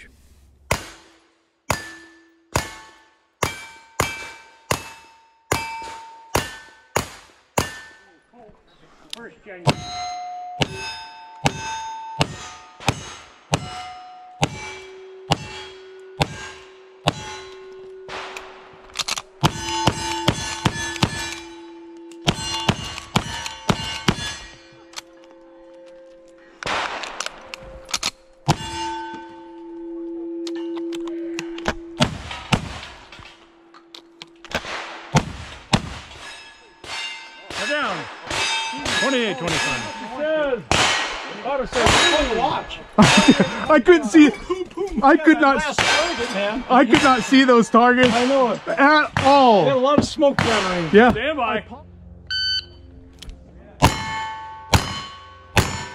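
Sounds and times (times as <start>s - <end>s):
steel target clanging and ringing: 0.7s - 8.3s, 9.6s - 51.6s, 53.8s - 55.9s.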